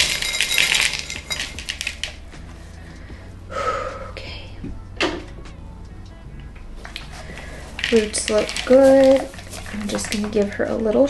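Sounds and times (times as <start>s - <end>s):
potting mix rattling into plastic basin: 0.0s - 2.2s, 7.0s - 11.0s.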